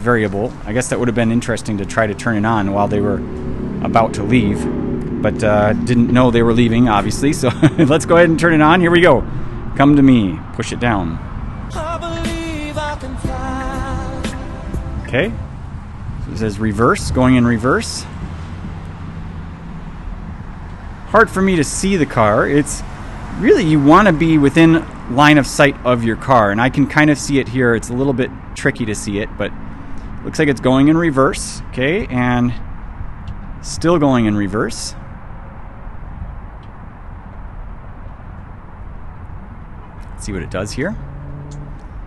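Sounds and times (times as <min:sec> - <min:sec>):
low rumble and hiss: 0:00.0 - 0:11.2
low uneven rumble: 0:00.0 - 0:23.9.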